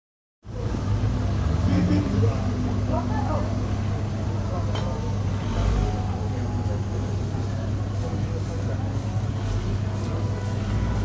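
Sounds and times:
street noise: 0:00.4 - 0:11.0.

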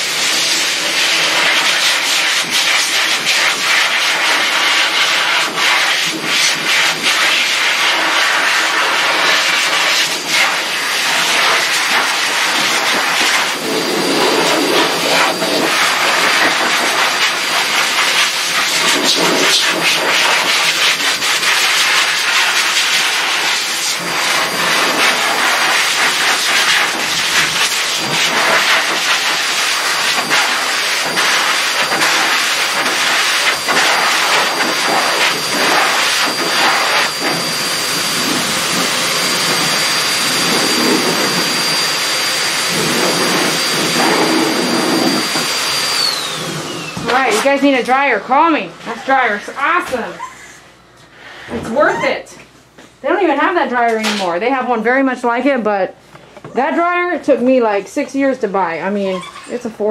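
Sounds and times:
dryer air rushing: 0:00.0 - 0:52.2
motor high whine: 0:35.1 - 0:47.3.

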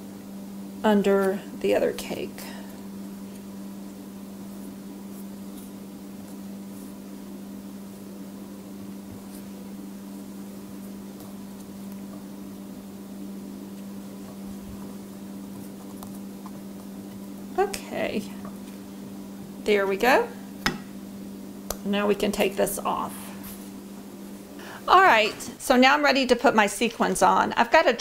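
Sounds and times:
low electrical hum: 0:00.0 - 0:28.0.

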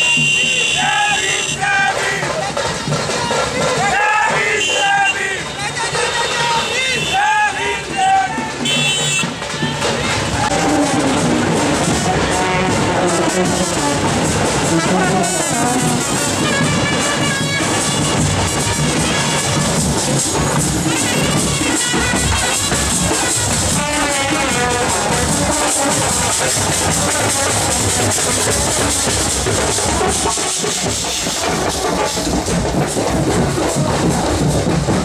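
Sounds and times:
marching brass band playing: 0:00.0 - 0:02.3, 0:03.3 - 0:35.0.

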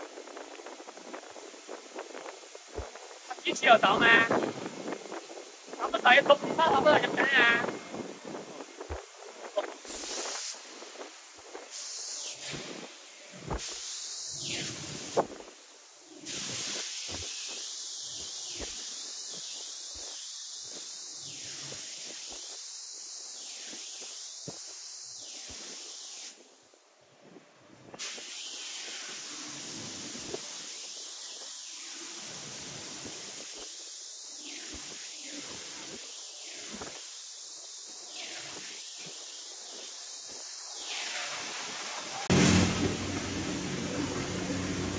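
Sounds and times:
spray head hissing: 0:00.7 - 0:26.4, 0:28.0 - 0:44.9.

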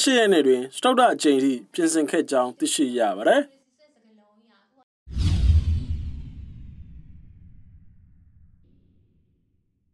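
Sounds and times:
deep boom: 0:05.1 - 0:09.7
sudden whoosh: 0:05.1 - 0:09.7.

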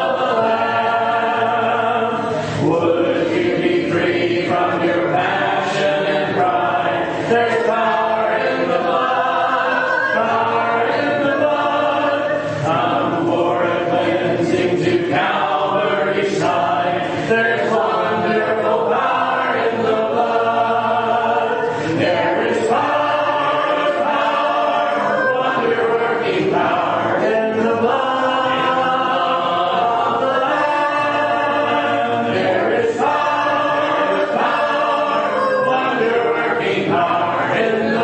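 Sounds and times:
congregation singing a hymn: 0:00.0 - 0:38.0.

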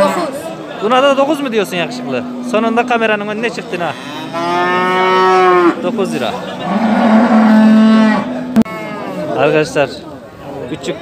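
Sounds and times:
cow mooing: 0:01.4 - 0:09.4.

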